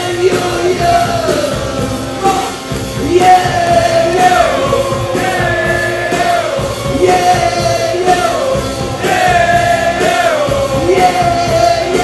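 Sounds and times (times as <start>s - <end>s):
man singing long notes: 0.0s - 12.0s
rock band accompaniment: 0.0s - 12.0s.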